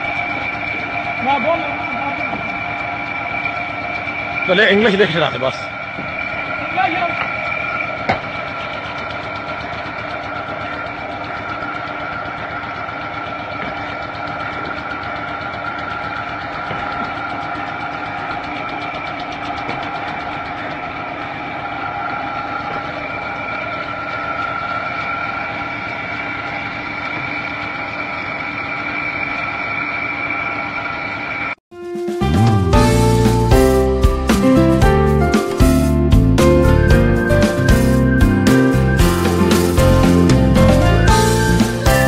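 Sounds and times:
motor-driven conveyor drone and rattle: 0.0s - 31.6s, 32.8s - 42.0s
high whine: 0.0s - 42.0s.

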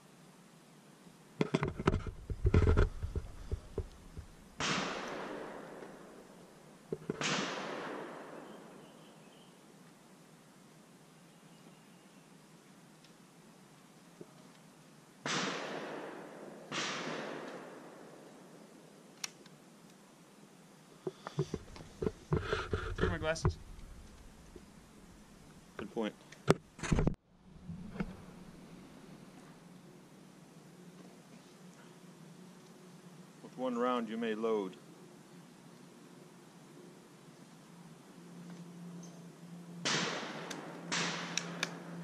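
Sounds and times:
rifle shots with echo: 4.6s - 6.3s, 7.2s - 8.8s, 15.2s - 18.5s, 39.8s - 42.0s.

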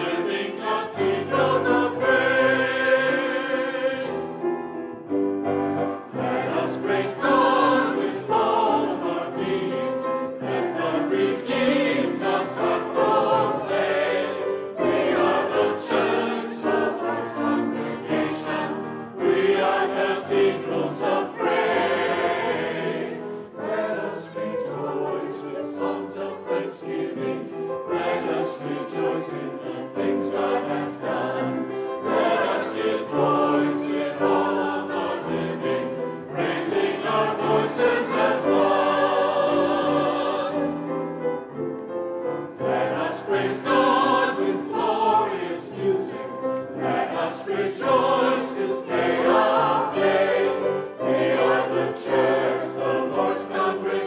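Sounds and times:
mixed choir singing: 0.0s - 5.0s, 5.7s - 54.0s
grand piano accompaniment: 0.0s - 54.0s.

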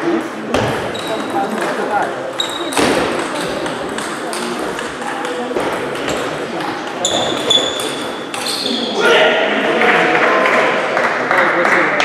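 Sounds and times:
murmur of voices: 0.0s - 12.0s
table tennis balls clicking: 0.8s - 8.6s.

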